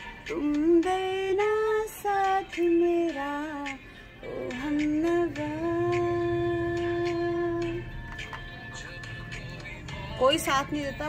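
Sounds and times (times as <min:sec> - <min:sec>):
woman singing unaccompanied: 0:00.0 - 0:08.0, 0:08.8 - 0:11.0.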